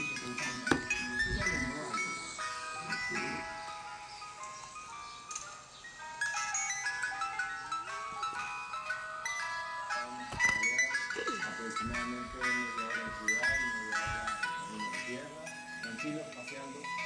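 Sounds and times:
ice cream truck jingle: 0:00.0 - 0:17.0.

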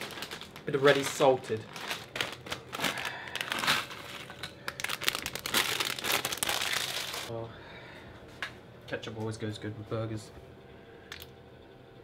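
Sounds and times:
crisp packet crinkling: 0:00.0 - 0:07.3.

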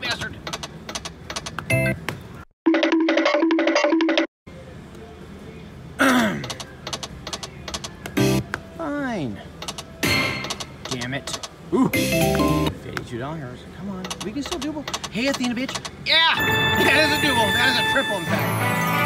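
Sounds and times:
electronic chime figure: 0:16.4 - 0:19.0.

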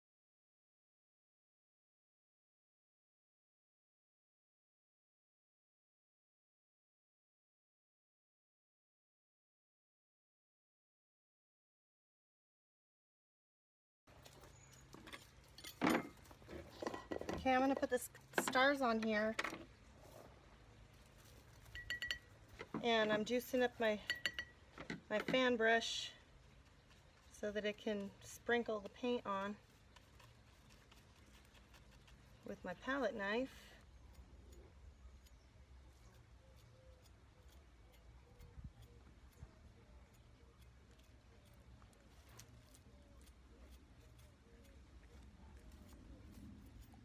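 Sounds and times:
paint tool clinking on container: 0:21.7 - 0:22.4, 0:24.0 - 0:24.6.

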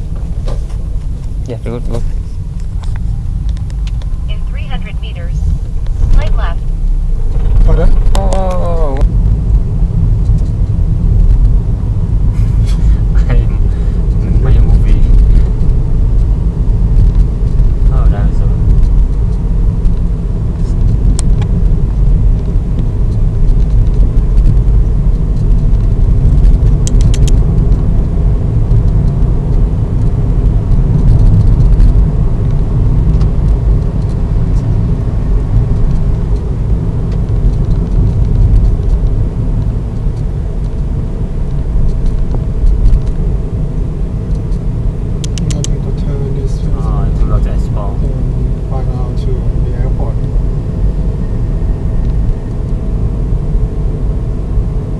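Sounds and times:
car road and engine rumble: 0:00.0 - 0:54.9.

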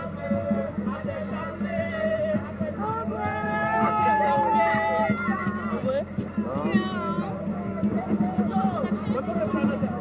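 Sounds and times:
crowd shouting: 0:00.0 - 0:09.7.

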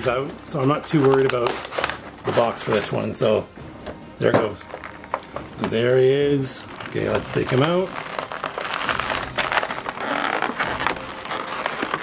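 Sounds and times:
plastic packaging crinkling: 0:00.0 - 0:03.0, 0:04.6 - 0:05.2, 0:06.4 - 0:12.0.

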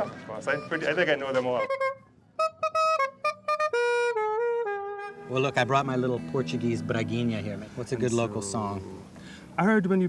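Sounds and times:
saxophone playing: 0:00.0 - 0:07.1.

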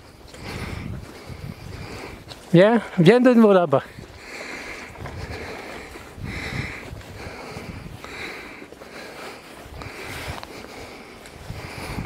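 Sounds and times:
rhythmic breathing: 0:00.0 - 0:03.2, 0:03.8 - 0:12.0.

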